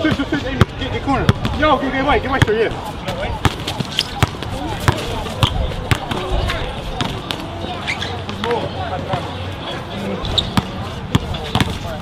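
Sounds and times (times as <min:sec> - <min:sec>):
basketball bouncing on court: 0:00.0 - 0:01.7, 0:02.4 - 0:06.3, 0:10.4 - 0:11.8
players' voices: 0:00.0 - 0:12.0.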